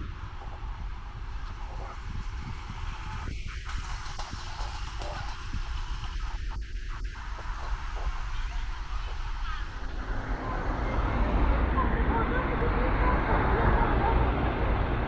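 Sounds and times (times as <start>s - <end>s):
wind rumble on microphone: 0.0s - 15.0s
road traffic going by: 8.7s - 15.0s.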